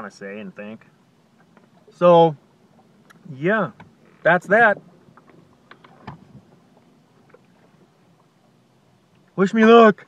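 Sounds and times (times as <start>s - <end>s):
boat motor hum: 0.0s - 10.0s.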